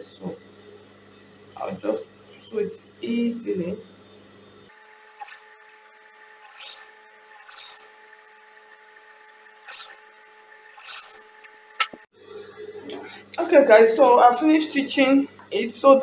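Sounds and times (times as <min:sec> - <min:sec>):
faint motor hum: 0:00.0 - 0:16.0
sewing machine stitching: 0:04.7 - 0:12.0
sharp click: 0:11.4 - 0:12.0.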